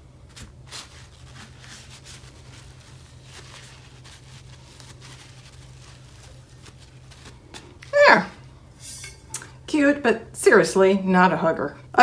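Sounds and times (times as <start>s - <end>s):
paper towel rustling: 0.0s - 8.7s
low room hum: 0.0s - 12.0s.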